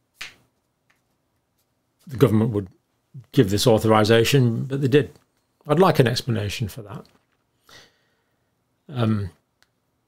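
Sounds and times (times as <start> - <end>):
man breathing in: 7.6 - 8.5.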